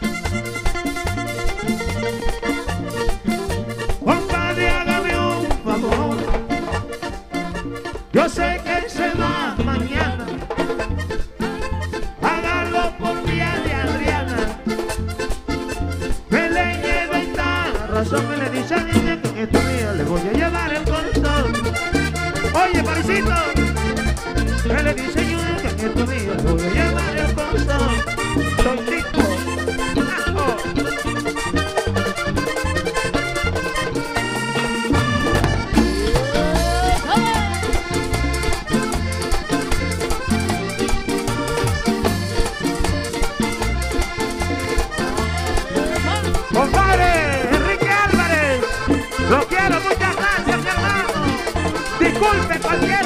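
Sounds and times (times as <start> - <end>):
accordion melody: 0.0 - 53.0
pulsing bass line: 0.0 - 53.0
rhythmic percussion: 0.0 - 53.0
voice crying out: 34.1 - 38.4.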